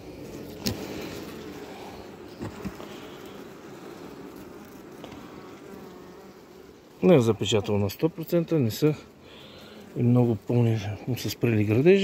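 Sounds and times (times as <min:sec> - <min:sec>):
honeybees humming: 0:00.0 - 0:12.0.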